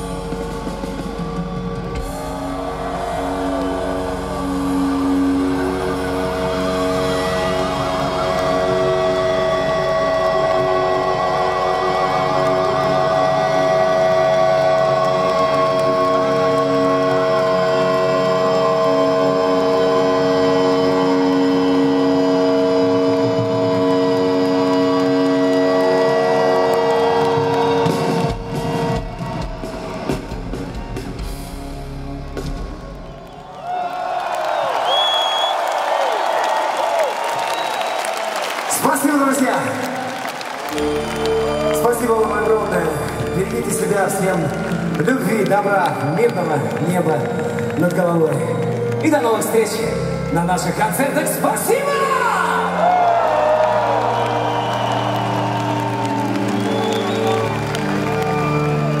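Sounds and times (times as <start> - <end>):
electric guitars holding a chord: 0.0 - 32.5.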